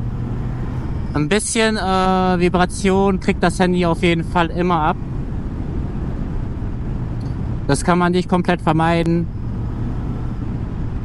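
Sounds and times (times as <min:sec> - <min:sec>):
wind and motorcycle road noise: 0:00.0 - 0:11.0.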